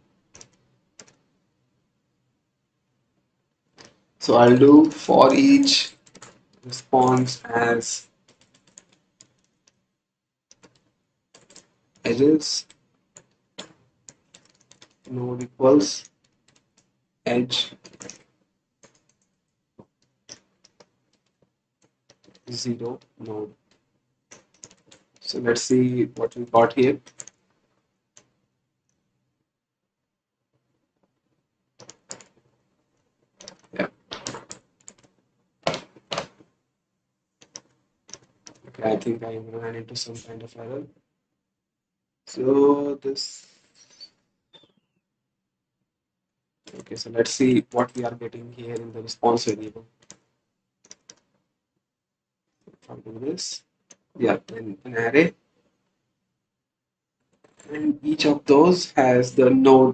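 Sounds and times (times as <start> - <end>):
computer keyboard keystrokes: 6.0 - 6.4, 8.3 - 9.5, 27.0 - 27.4.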